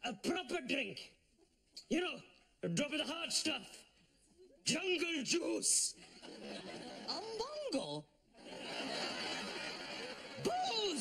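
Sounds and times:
studio audience laughing: 6.0 - 7.4, 8.4 - 11.0.

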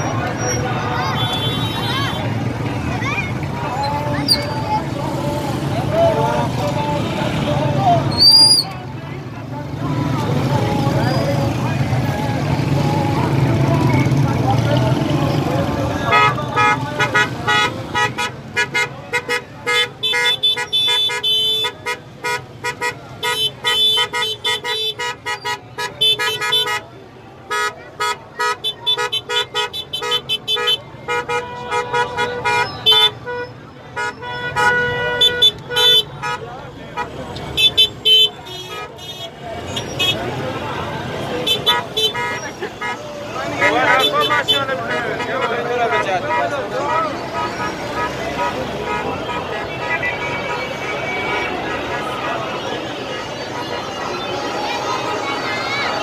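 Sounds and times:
crowd voices: 0.0 - 56.0
street traffic: 0.0 - 56.0
car horns honking rapid beeps: 15.9 - 26.9, 27.5 - 40.4, 41.0 - 56.0.

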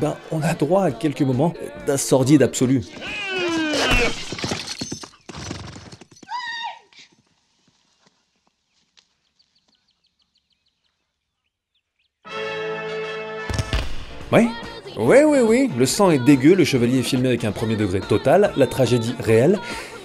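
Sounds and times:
music: 0.0 - 3.2, 12.2 - 20.0
horse whinnying: 2.8 - 7.0
hoofbeats: 2.8 - 10.0.

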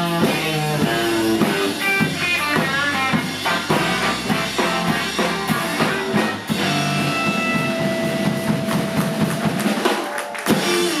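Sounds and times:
electric bass: 0.0 - 9.7, 10.5 - 11.0
busy drumming: 0.0 - 11.0.

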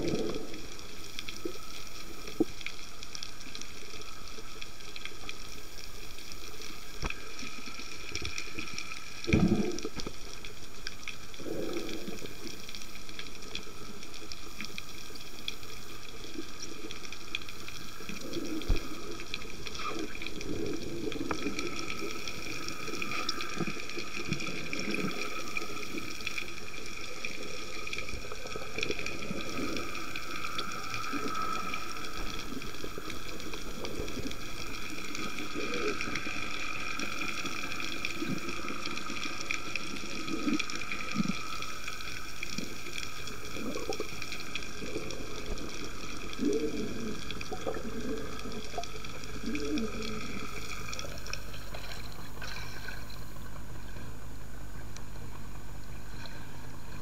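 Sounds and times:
muffled underwater rush: 0.0 - 57.0.

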